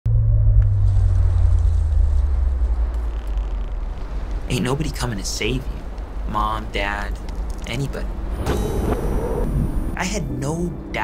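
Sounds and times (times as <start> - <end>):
loud deep rumble: 0.0 - 4.5.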